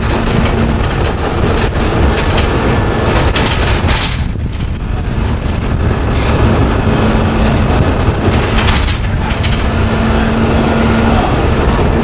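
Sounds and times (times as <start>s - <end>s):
body rattles: 0.0s - 5.9s, 8.0s - 9.9s
diesel bus engine running: 0.0s - 12.0s
road noise: 0.0s - 12.0s.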